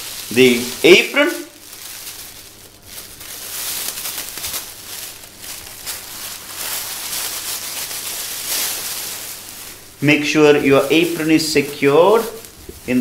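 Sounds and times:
plastic apron crinkling: 0.0s - 13.0s.

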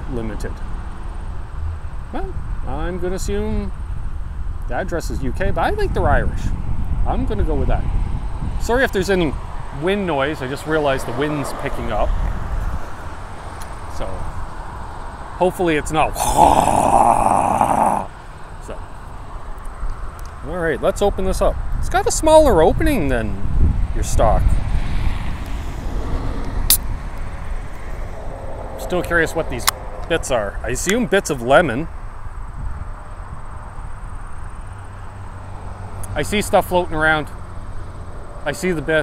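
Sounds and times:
wind noise on microphone: 3.6s - 9.6s, 12.0s - 13.2s, 21.2s - 33.7s
man making rasping vocal noise: 16.1s - 18.2s.

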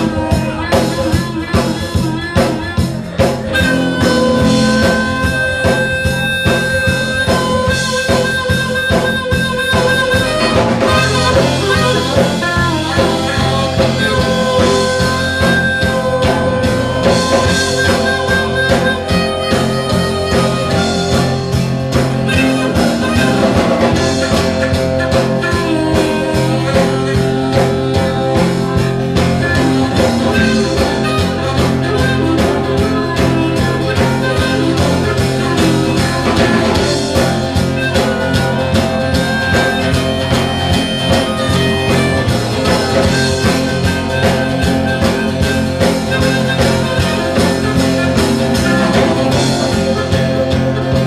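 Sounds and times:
bass: 0.0s - 51.0s
guitar: 0.0s - 51.0s
harmonica long held notes: 0.0s - 51.0s
steady drum beat: 0.0s - 51.0s.

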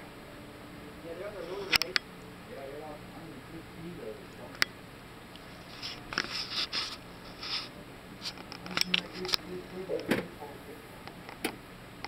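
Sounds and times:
indistinct background voices: 8.6s - 11.1s.

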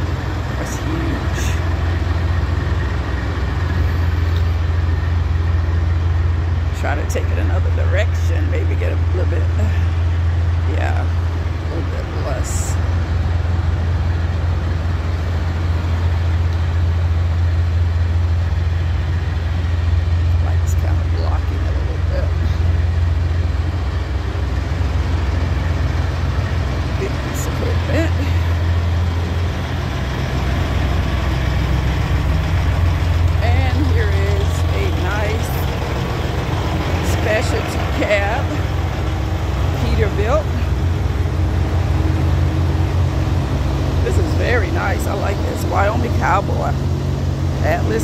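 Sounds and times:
diesel truck engine idling: 0.0s - 48.0s.

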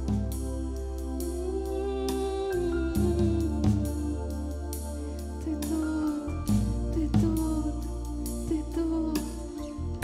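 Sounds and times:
deep sustained bass: 0.0s - 10.0s
held keyboard chords: 0.0s - 10.0s.

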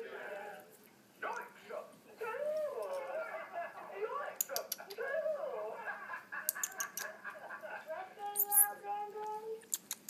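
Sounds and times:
sharp clicks: 4.4s - 5.0s, 9.6s - 10.0s.

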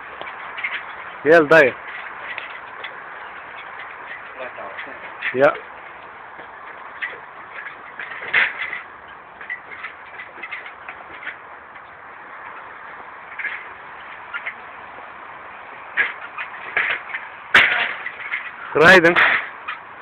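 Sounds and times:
footsteps on aluminium ladder rungs: 0.0s - 20.0s
outdoor background noise: 0.0s - 20.0s.

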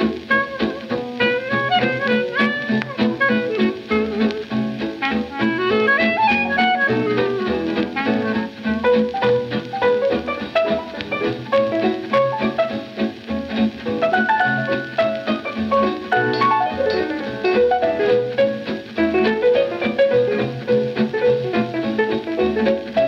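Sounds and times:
instrumental swing jazz record: 0.0s - 23.0s.

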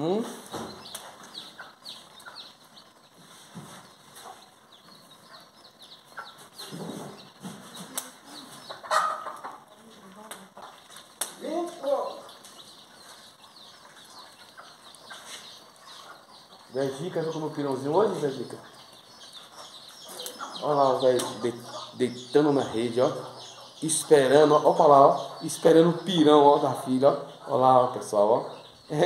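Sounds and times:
chickens clucking: 0.0s - 29.0s
chicks peeping: 0.0s - 29.0s.

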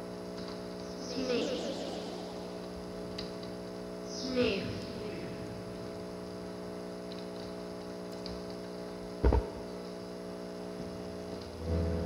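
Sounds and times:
amplifier mains hum: 0.0s - 12.0s.

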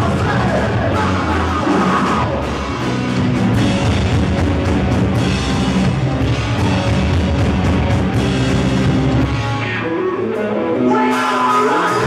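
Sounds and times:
electric guitar alone: 0.0s - 12.0s
rock band playing loud: 0.0s - 12.0s.

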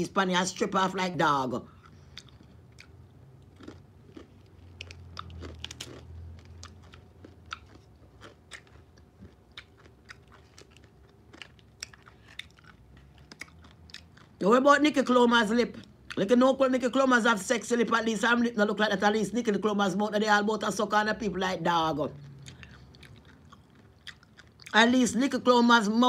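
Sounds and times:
person chewing crunchy food: 1.7s - 14.5s, 22.1s - 24.8s.

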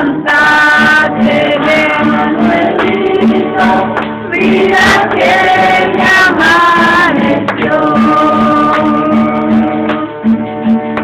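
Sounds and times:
group singing worship song: 0.0s - 10.1s.

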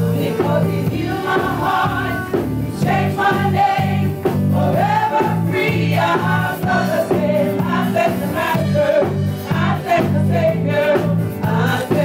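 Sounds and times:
women singing gospel: 0.0s - 12.0s.

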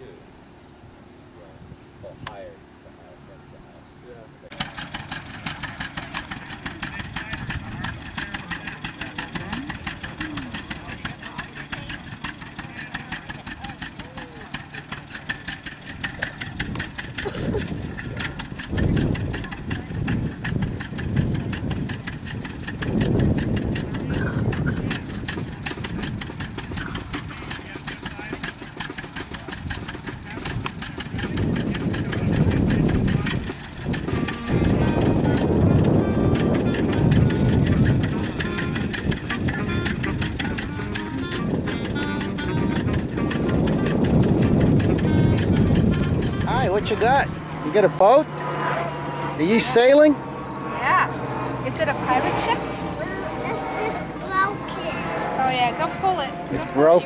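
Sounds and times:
tractor engine idling: 4.1s - 57.0s.

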